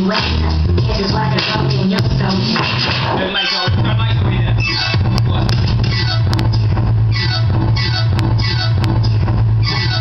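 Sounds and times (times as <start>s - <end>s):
hip hop dj mix: 0.0s - 10.0s
heavy sustained bass note: 4.6s - 10.0s.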